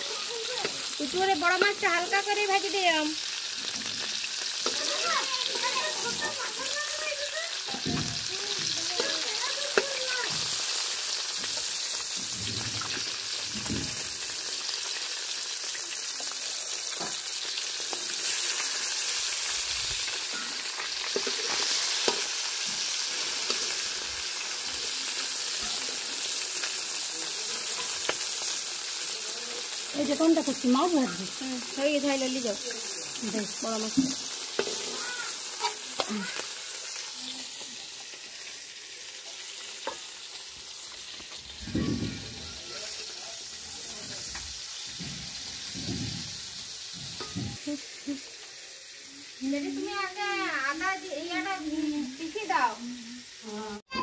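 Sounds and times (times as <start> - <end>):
fish sizzling in hot oil: 0.0 - 54.0
turning tool tapping a pan: 1.4 - 2.4, 33.8 - 36.2.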